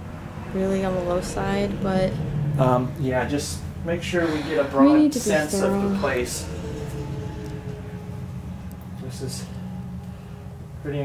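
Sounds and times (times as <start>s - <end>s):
faint steady tones: 0.0s - 11.0s
highway traffic rumble: 0.0s - 11.0s.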